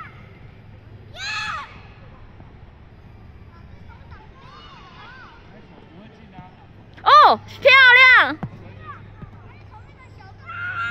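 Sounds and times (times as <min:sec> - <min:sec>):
distant children calling out: 0:00.0 - 0:10.9
low outdoor background noise: 0:00.0 - 0:10.9.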